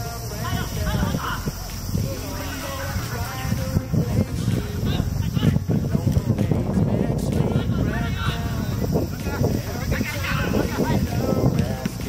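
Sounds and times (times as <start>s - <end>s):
players shouting: 0.0s - 6.3s
field ambience: 0.0s - 12.0s.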